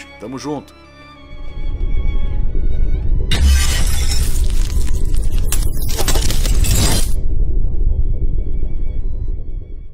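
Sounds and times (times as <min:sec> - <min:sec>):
music: 0:00.0 - 0:09.9
low rumble: 0:01.1 - 0:09.9
glass shattering crash: 0:03.3 - 0:07.2.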